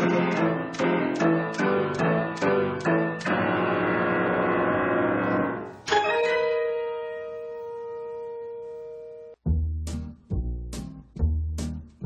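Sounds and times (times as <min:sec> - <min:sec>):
piano-like keyboard chords: 0:00.0 - 0:09.5.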